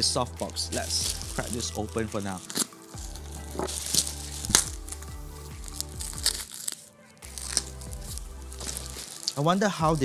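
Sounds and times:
background music with bass beat: 0.0s - 6.5s, 7.2s - 10.0s
plastic mailer crinkling and tearing: 0.2s - 10.0s.

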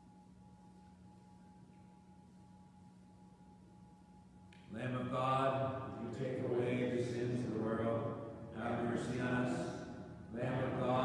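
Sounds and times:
man chanting: 4.7s - 11.0s.

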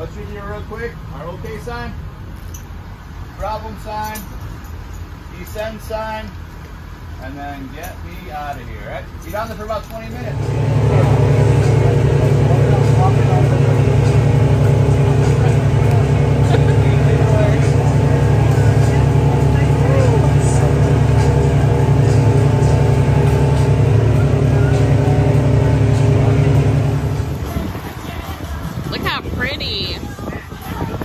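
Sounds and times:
boat engines droning: 0.0s - 31.0s.

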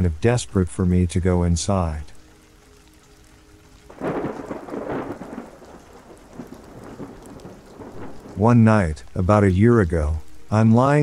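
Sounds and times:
rain: 0.0s - 11.0s
thunder rolling: 3.9s - 9.0s.

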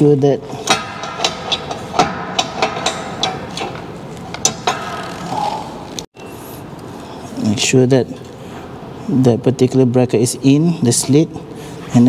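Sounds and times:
metal frame pieces clicking: 0.6s - 6.0s.

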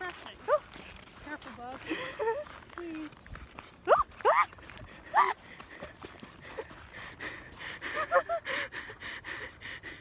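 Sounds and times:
scrambling footsteps on ice: 0.0s - 8.0s
woman's startled cry: 3.8s - 4.5s
breathless gasping laughter: 4.9s - 10.0s.

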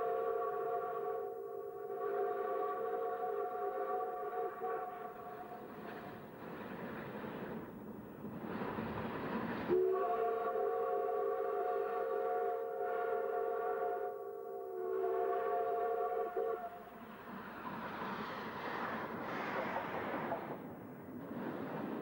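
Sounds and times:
steam locomotive whistle: 0.0s - 5.8s, 9.7s - 17.0s
rush of steam: 5.2s - 10.1s, 16.9s - 22.0s.

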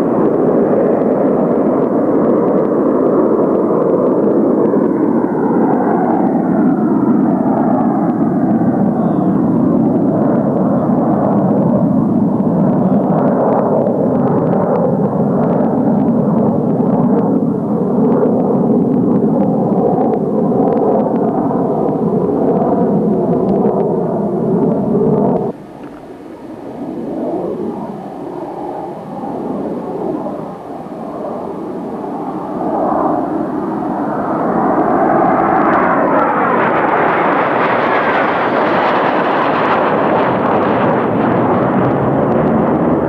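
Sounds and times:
jet engine running: 0.0s - 43.0s.

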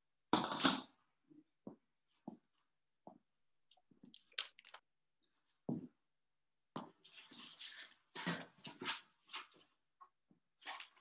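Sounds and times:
paper map rustling and crinkling: 7.0s - 9.9s.

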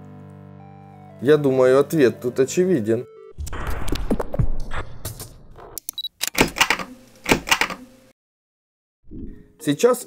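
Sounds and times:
sharp typewriter-like clicking: 6.2s - 7.9s.

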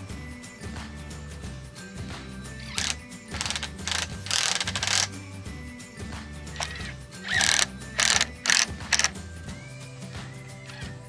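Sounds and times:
cordless driver driving screw into wood: 2.6s - 5.1s, 6.6s - 9.1s.

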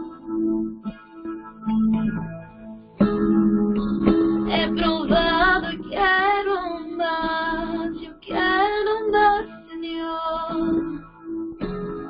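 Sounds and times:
guitar accompaniment: 0.0s - 12.0s
woman singing worship song: 4.5s - 11.0s.

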